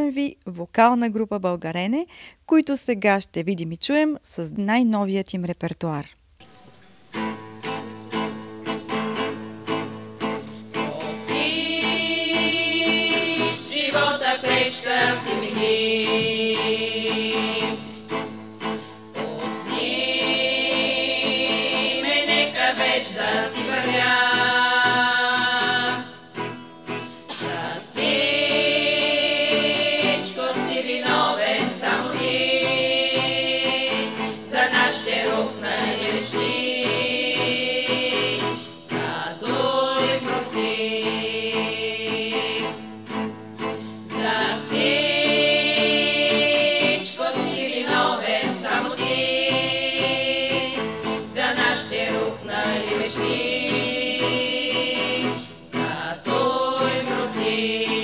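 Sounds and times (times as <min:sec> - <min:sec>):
acoustic guitar: 0:03.8 - 0:58.0
women singing in harmony: 0:10.8 - 0:18.1, 0:19.1 - 0:26.3, 0:27.2 - 0:43.1, 0:44.0 - 0:58.0.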